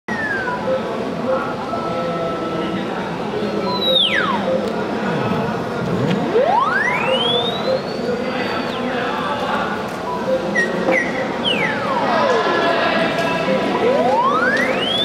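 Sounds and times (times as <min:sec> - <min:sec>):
theremin pitch glides: 0:00.1 - 0:02.8, 0:03.5 - 0:09.1, 0:10.2 - 0:15.0.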